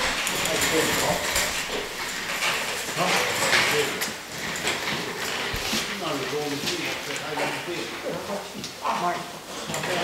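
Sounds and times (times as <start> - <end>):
clatter and knocks of chairs: 0.0 - 10.0
shuffling: 4.9 - 8.6.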